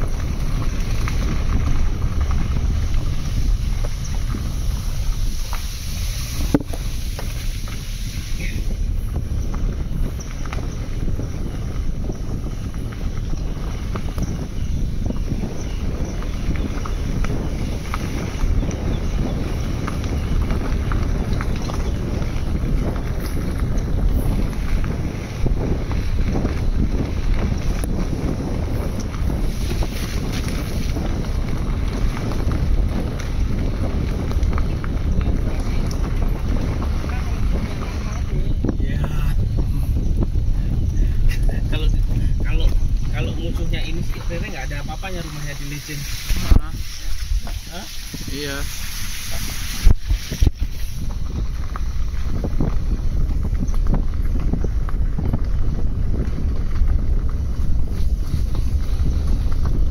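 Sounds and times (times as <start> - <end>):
car driving on dirt road: 0.0 - 59.9.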